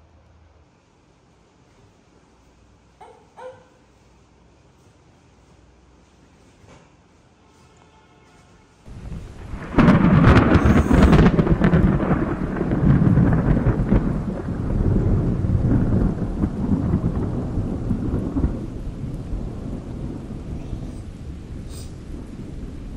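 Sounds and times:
rain: 0:08.8 - 0:22.9
thunder rumbling and cracking: 0:08.9 - 0:22.9.

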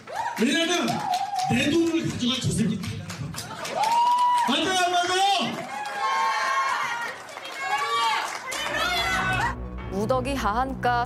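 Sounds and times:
people shouting: 0:05.8 - 0:09.6.

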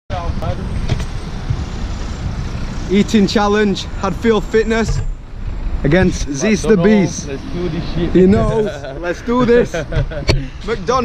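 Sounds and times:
road traffic rumble: 0:00.1 - 0:11.0.

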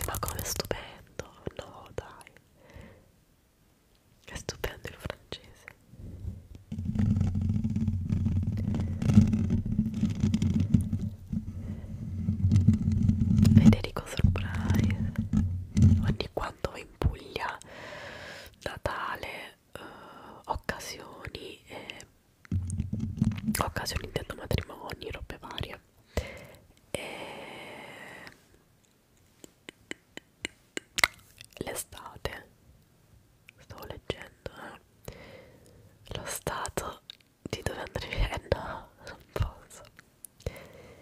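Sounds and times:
hands rubbing microphone grille: 0:06.1 - 0:16.4, 0:22.5 - 0:24.7, 0:29.2 - 0:31.7
fingernails tapping microphone grille: 0:06.4 - 0:16.3.

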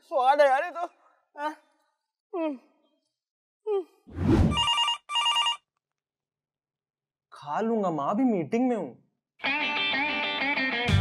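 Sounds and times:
telephone ringing: 0:04.5 - 0:05.7.

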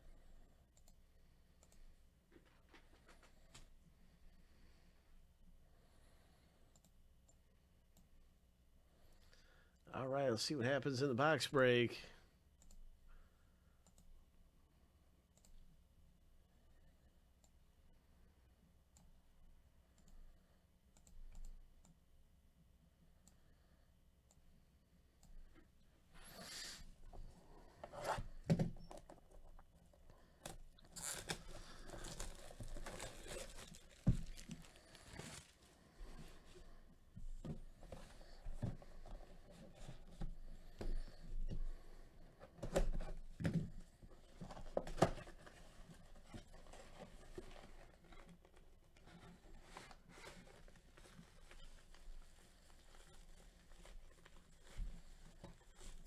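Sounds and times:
computer mouse clicks: 0:06.7 - 0:07.4, 0:21.0 - 0:22.0
gloves and packaging rustling: 0:27.2 - 0:36.8, 0:42.4 - 0:56.0.

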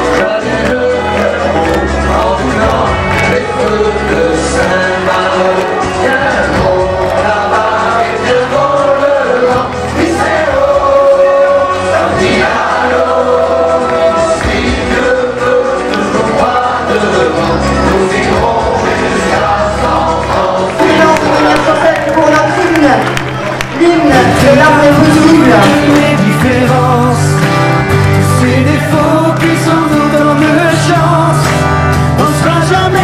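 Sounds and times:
group of voices singing: 0:00.0 - 0:33.0
steady bass line: 0:00.0 - 0:33.0.

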